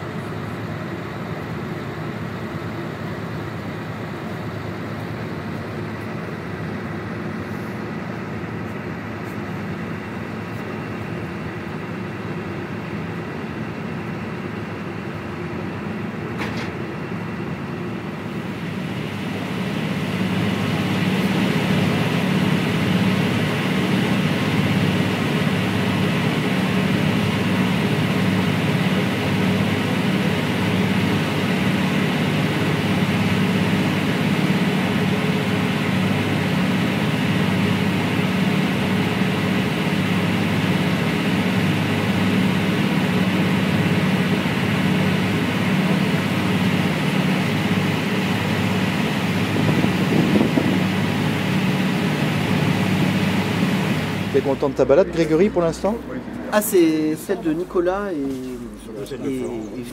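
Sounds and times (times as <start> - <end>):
ferry engine hum: 0.0 - 59.9.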